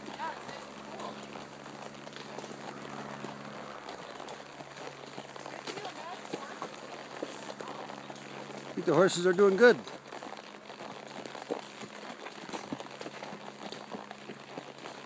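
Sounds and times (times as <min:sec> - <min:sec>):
horse hooves on dirt: 0:00.0 - 0:15.0.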